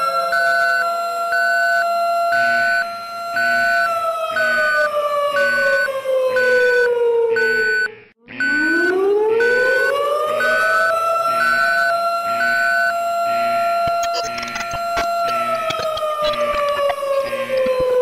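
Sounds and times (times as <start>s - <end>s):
gliding siren tone: 0.0s - 18.0s.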